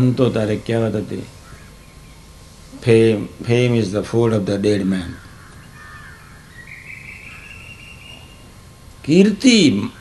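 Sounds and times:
background hiss: 0:00.0 - 0:10.0
high drawn-out animal call: 0:05.0 - 0:08.8.

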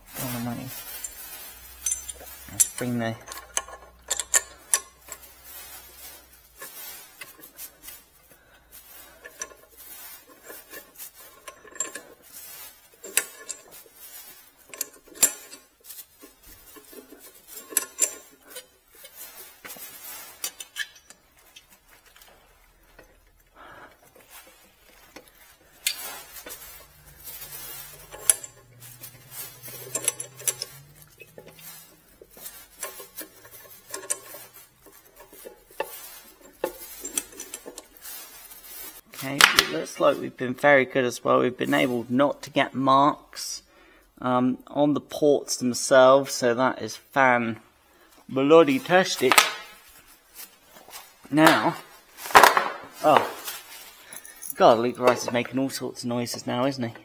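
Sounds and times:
light metallic clinks and knocks: 0:00.0 - 0:39.8, 0:48.8 - 0:57.0.

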